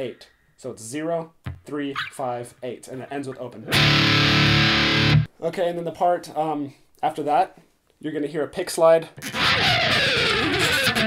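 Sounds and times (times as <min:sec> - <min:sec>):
guitar pick scraping strings: 0:09.2 - 0:11.0.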